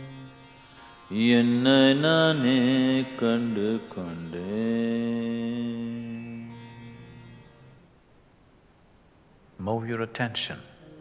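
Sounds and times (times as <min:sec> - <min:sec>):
man chanting: 0:01.1 - 0:07.4, 0:09.6 - 0:11.0.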